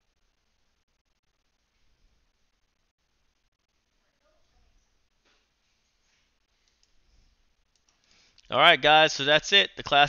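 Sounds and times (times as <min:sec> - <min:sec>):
faint clicks: 0:06.6 - 0:07.0.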